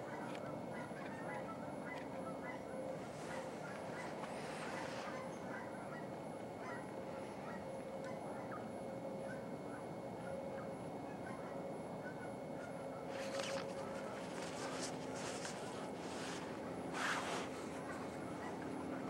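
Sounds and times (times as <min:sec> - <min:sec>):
waterfowl calling: 0:00.1 - 0:06.9.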